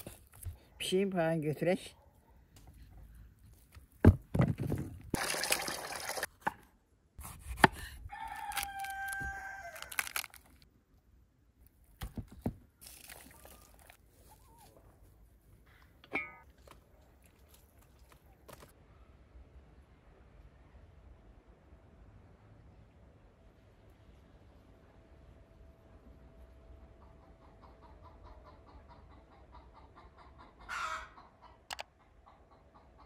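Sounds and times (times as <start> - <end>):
rooster crowing: 8.1 - 10.3.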